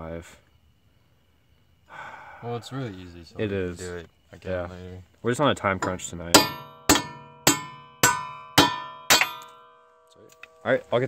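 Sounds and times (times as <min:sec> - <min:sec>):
hammer clanging on metal: 0:05.8 - 0:10.6.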